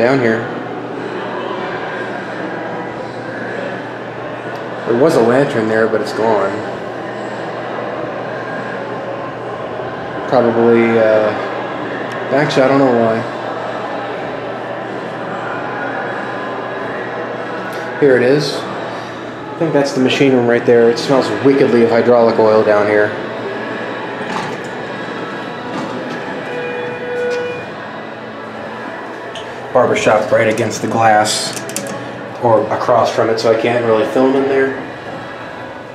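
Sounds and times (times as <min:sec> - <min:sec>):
elevator doors sliding open: 0:21.1 - 0:35.9
short steady whine: 0:22.6 - 0:30.8.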